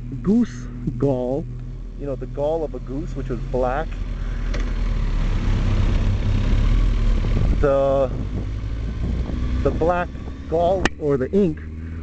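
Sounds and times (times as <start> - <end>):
engine rumble: 0.0 - 12.0.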